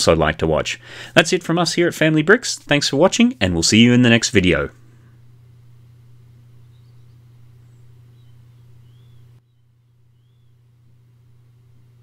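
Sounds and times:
turntable motor hum: 3.5 - 12.0.

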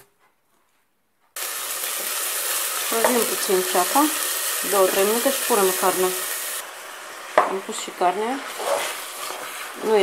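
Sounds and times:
onion sizzling in hot oil: 1.4 - 10.0.

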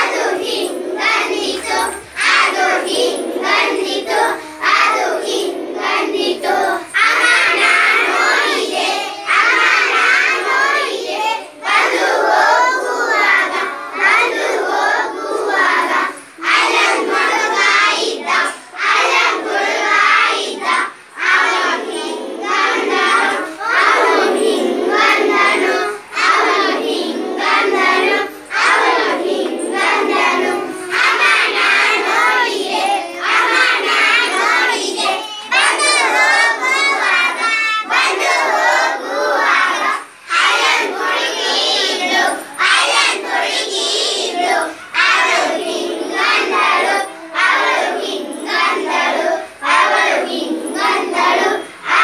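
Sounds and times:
children singing together: 0.0 - 52.0.

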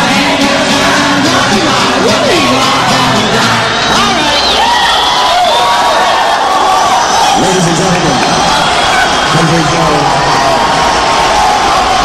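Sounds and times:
concert crowd cheering and shouting: 0.0 - 12.0.

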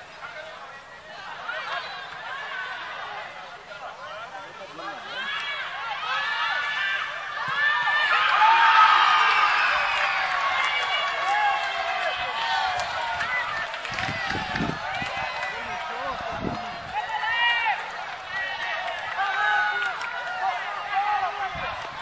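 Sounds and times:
spectators calling and shouting: 0.0 - 22.0.

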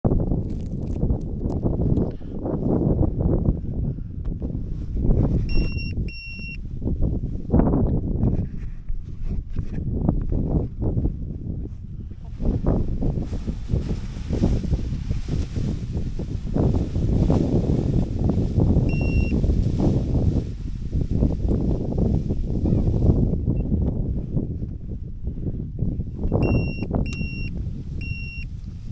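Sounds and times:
wind buffeting microphone: 0.0 - 28.9
electronic beeps: 5.5 - 6.6
short electronic beep: 5.5 - 6.6, 18.9 - 19.3, 26.4 - 28.4.

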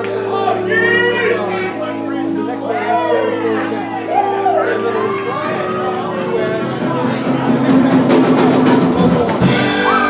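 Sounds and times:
band holding notes: 0.0 - 10.0.

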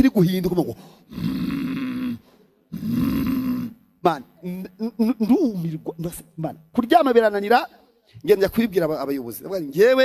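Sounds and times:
man imitating snoring: 1.1 - 3.8.

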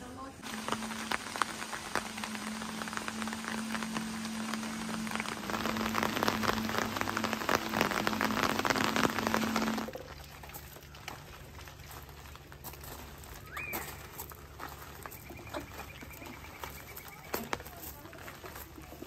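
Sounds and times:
low steady hum: 0.0 - 19.0
rain pattering: 0.0 - 19.0.

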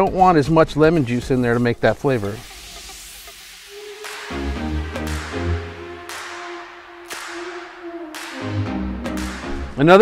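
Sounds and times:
electronic music: 1.1 - 10.0.

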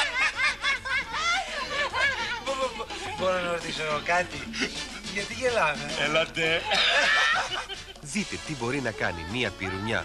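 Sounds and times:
people laughing: 0.0 - 3.6, 5.9 - 8.1.

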